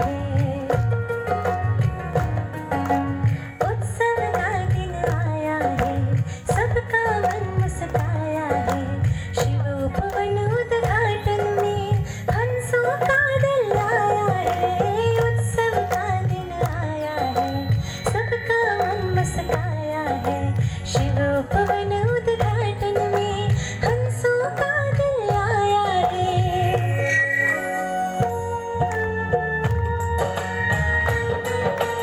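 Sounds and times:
musical accompaniment with low beat: 0:00.0 - 0:10.2, 0:24.8 - 0:32.0
woman singing into a microphone: 0:00.0 - 0:32.0.

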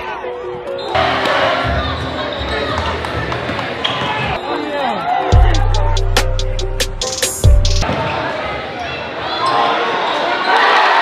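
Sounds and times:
music: 0:00.0 - 0:04.4, 0:05.1 - 0:07.9
sneakers squeaking on court: 0:00.2 - 0:04.7.

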